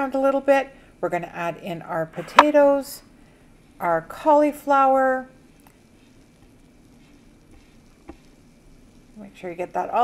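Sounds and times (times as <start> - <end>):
vegetables sizzling in a pot: 3.8 - 10.0.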